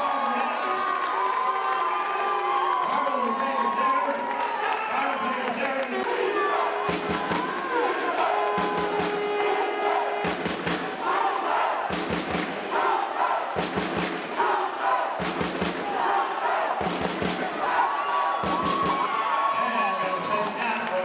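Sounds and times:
crowd chanting and shouting: 0.0 - 21.0
rhythmic sharp beats: 6.0 - 19.3, 20.0 - 21.0.

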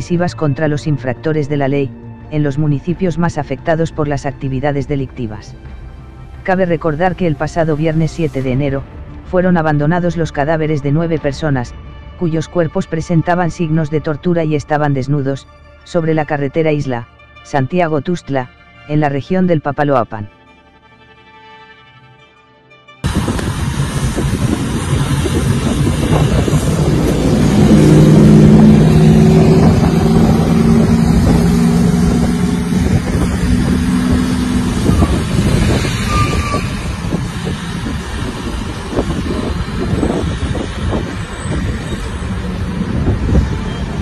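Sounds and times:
heavy truck engines droning: 0.0 - 20.3, 23.0 - 44.0
tyres on wet road: 23.1 - 44.0.

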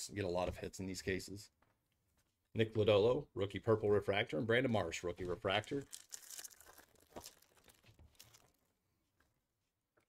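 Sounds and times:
foil wrapper tearing and crinkling: 5.6 - 8.7.

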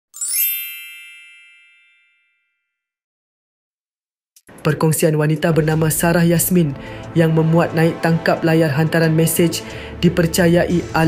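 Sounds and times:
shimmering synthetic chime: 0.1 - 2.6.

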